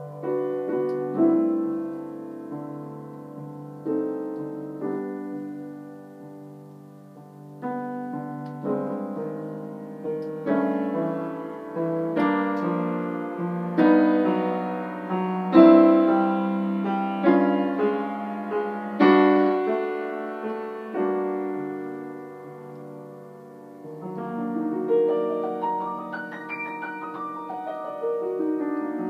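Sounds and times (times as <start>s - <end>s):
slow piano chords: 0.0s - 29.0s.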